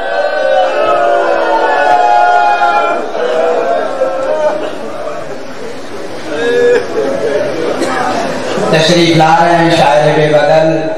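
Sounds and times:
background chatter: 0.0s - 10.9s.

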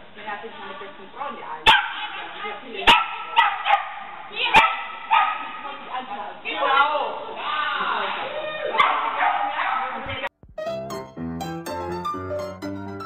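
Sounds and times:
dog barking: 1.6s - 5.6s, 8.7s - 10.1s.

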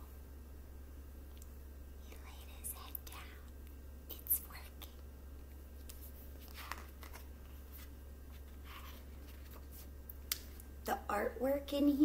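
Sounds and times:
steady low hum: 0.0s - 12.0s
woman whispering: 2.0s - 3.5s, 4.1s - 5.0s.

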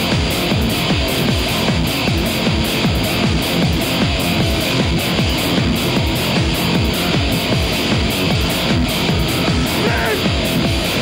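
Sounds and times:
electronic rock band music: 0.0s - 11.0s.

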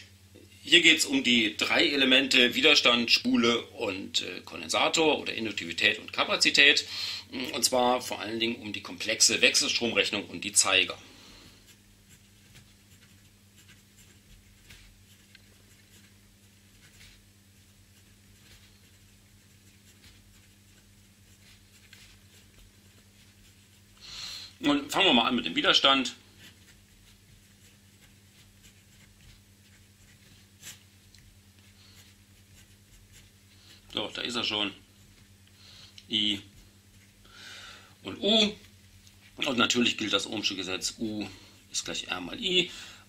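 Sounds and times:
low steady hum: 0.0s - 43.0s
pen scratching on paper: 11.7s - 24.0s, 25.7s - 35.2s.

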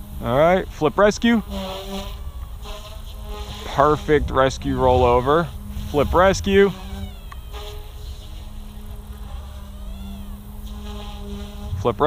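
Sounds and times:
rc helicopter motor and rotor drone: 0.0s - 12.0s.

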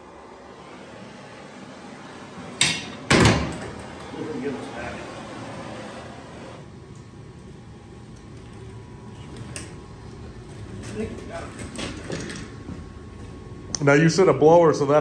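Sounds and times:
blower fan humming: 0.0s - 15.0s.

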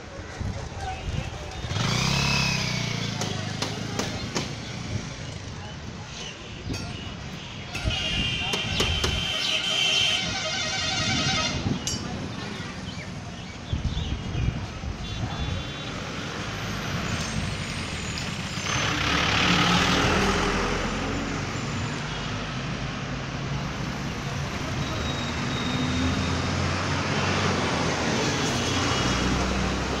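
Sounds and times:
street traffic: 0.0s - 30.0s
loud vehicle passing: 1.6s - 5.1s, 16.3s - 21.8s.

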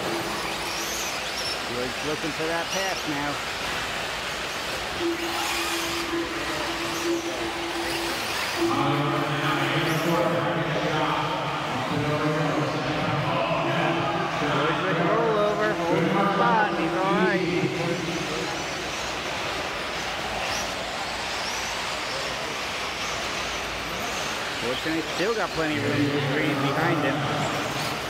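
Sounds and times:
arena background noise: 0.0s - 28.0s
commentator over public address: 1.6s - 3.5s, 5.0s - 18.9s, 24.6s - 28.0s.

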